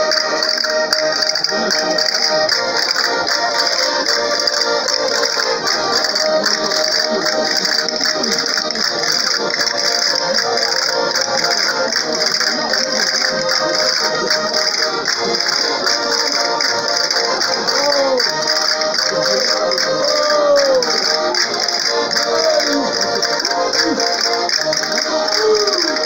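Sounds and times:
accordion music: 0.0 - 26.0.

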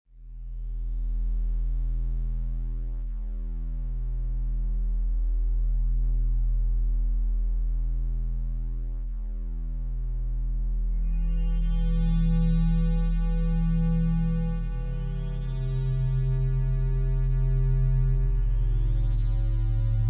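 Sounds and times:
low synthesizer drone: 0.4 - 20.0.

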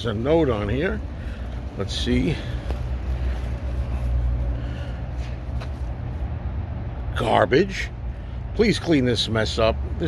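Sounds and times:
steady low rumble: 0.0 - 8.6.

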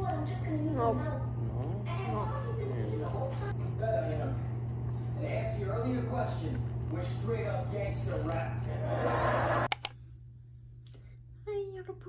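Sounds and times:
noisy burst with voice: 0.3 - 9.6
sharp clicks: 9.7 - 10.0.

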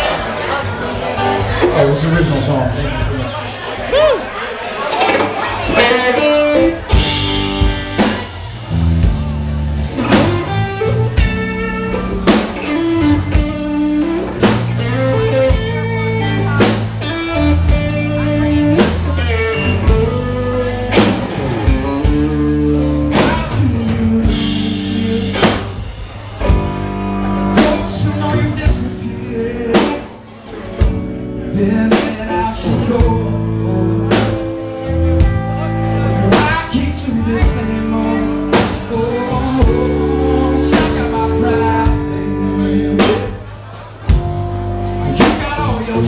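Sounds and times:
acoustic-electric guitar: 0.0 - 46.0
second electric guitar: 4.8 - 46.0
drum kit: 5.0 - 46.0
electric bass: 5.5 - 46.0.

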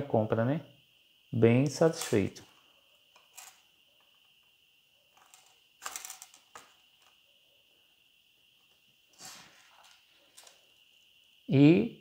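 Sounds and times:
faint high-pitched whine: 0.0 - 12.0.

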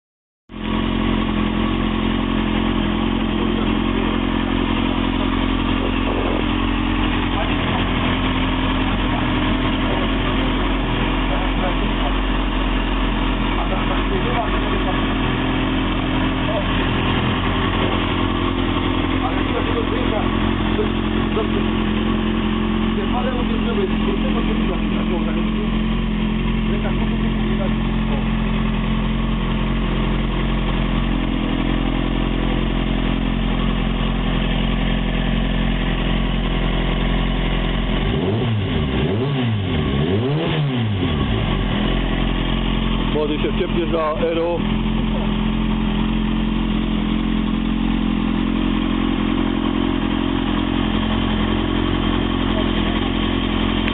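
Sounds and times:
motorcycle engine idling: 0.5 - 40.0, 40.6 - 53.9.

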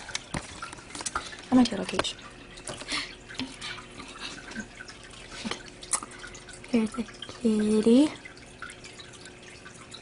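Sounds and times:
water dripping: 0.0 - 10.0.

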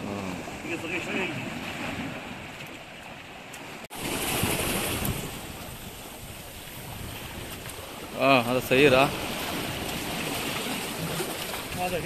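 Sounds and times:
surf washing over rocks: 0.0 - 2.9, 3.8 - 12.0.

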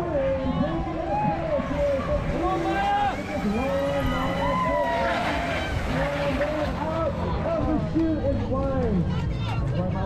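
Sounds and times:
spectators shouting and cheering: 0.0 - 10.0
bike tyres and drivetrains whirring: 0.1 - 9.6.

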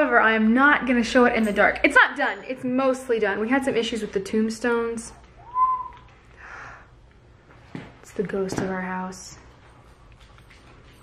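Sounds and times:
high whistle-like tone: 5.4 - 6.1.

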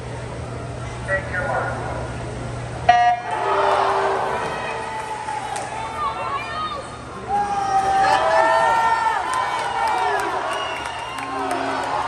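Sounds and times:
electronic starting horn tone: 2.9 - 4.9.

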